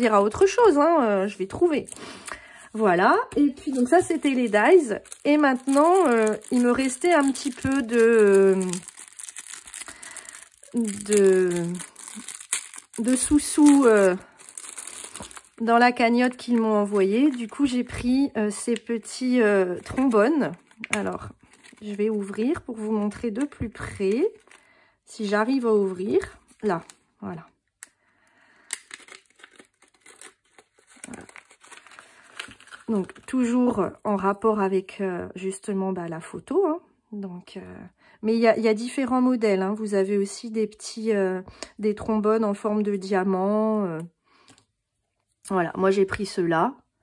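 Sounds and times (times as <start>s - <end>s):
plastic packet crinkling: 0.0s - 19.0s, 19.6s - 24.7s, 28.6s - 33.9s.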